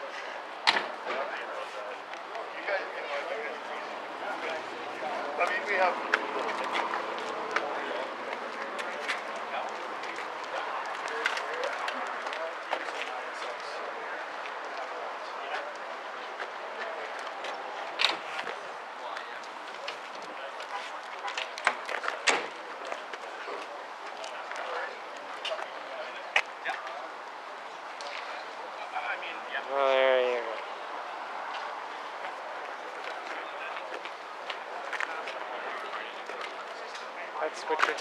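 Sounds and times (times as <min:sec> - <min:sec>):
people talking in background: 0:00.0 - 0:38.0.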